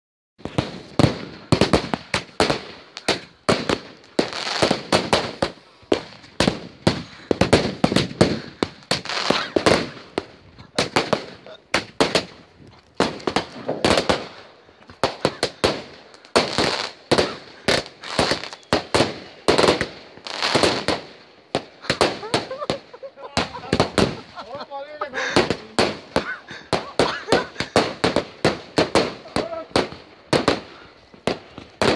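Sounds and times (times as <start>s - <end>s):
fireworks bangs and crackles: 0.4s - 31.9s.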